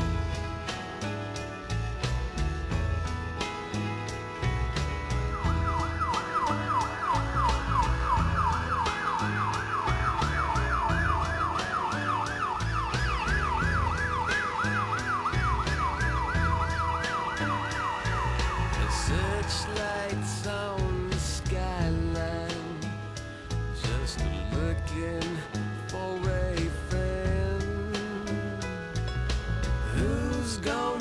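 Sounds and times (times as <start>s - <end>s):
music with beat and bass: 0.0s - 31.0s
emergency siren yelping: 5.2s - 20.8s.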